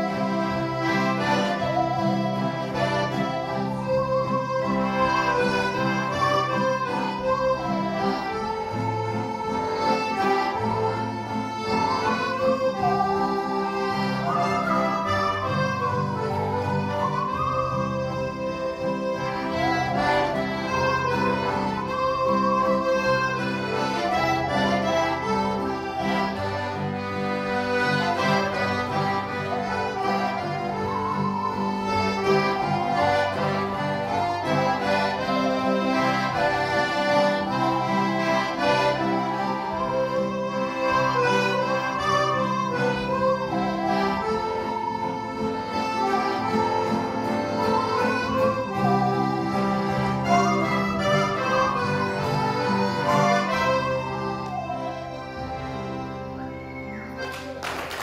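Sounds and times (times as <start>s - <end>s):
button accordions playing a tune: 0.0s - 58.0s.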